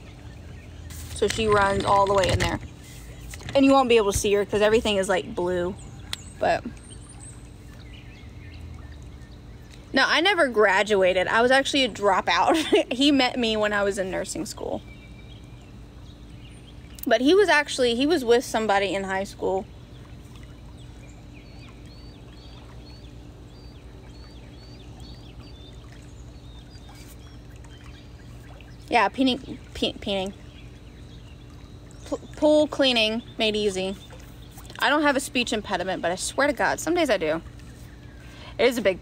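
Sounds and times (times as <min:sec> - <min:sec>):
low outdoor hum: 0:00.0 - 0:39.0
bird chirping: 0:14.4 - 0:39.0.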